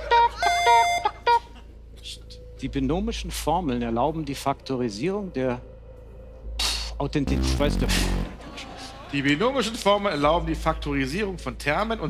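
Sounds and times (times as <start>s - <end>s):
short electronic beeps: 7.3s - 8.3s
buzzy time-up tone: 7.3s - 8.4s.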